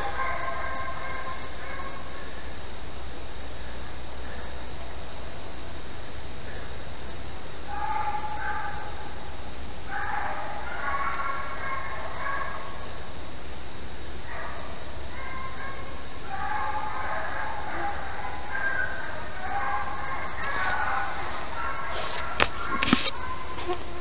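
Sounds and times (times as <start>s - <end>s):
dogs baying and howling: 0.0s - 2.6s, 7.6s - 13.2s, 14.2s - 23.7s
steady background hiss: 0.0s - 24.0s.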